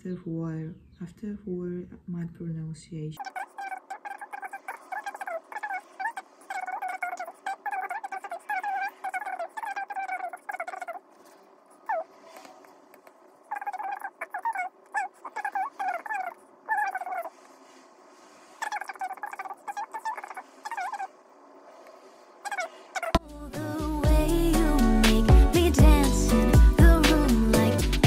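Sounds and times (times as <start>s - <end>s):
birds calling: 3.2s - 21.2s, 21.8s - 23.2s
background music: 23.2s - 28.0s.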